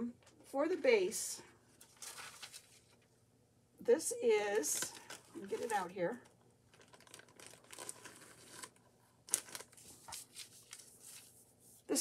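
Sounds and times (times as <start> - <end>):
fabric rustling and crinkling: 1.6 - 3.1.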